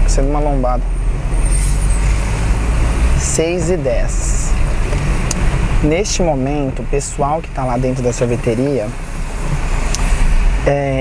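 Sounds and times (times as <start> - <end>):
car engine rumble: 0.0 - 11.0
tyres on road: 0.0 - 11.0.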